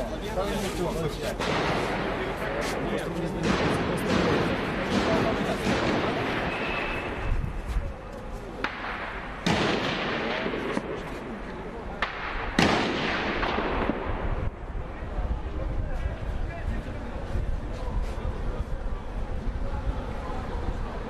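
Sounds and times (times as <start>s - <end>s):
loud bangs with echo: 1.4s - 7.3s, 8.6s - 14.6s.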